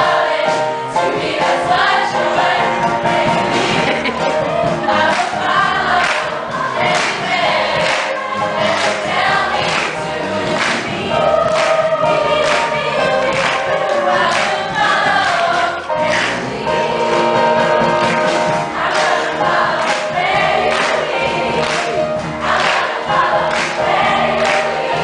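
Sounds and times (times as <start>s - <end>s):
girls' choir singing: 0.0s - 25.0s.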